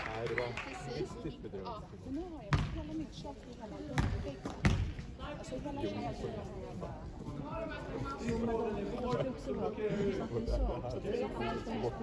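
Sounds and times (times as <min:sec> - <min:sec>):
basketball bouncing on floor: 0:02.5 - 0:02.9, 0:03.9 - 0:05.0.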